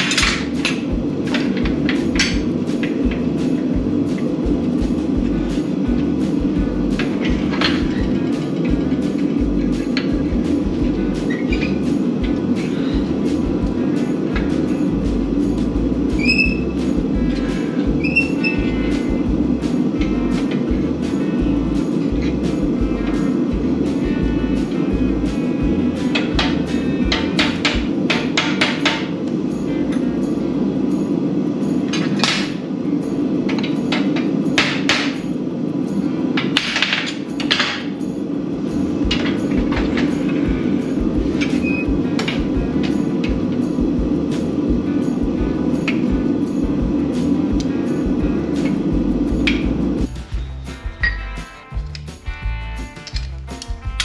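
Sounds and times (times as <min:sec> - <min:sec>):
metal clinks and knocks: 0:52.9 - 0:54.0.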